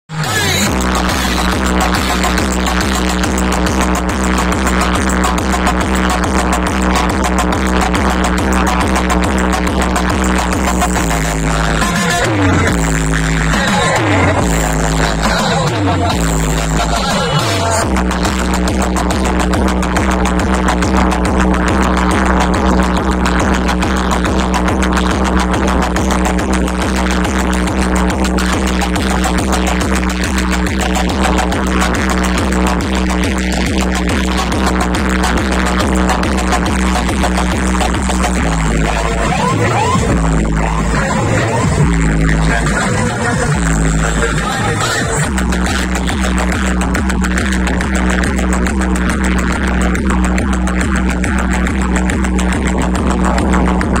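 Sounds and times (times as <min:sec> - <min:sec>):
loud electronic dance music: 0:00.1 - 0:54.0
sliding bass tones: 0:00.1 - 0:54.0.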